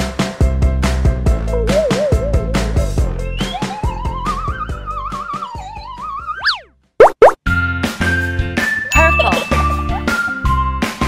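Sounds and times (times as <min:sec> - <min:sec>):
children's music wavering melody: 0:01.5 - 0:06.4, 0:08.8 - 0:10.8
rising cartoon swoops: 0:01.5 - 0:07.4.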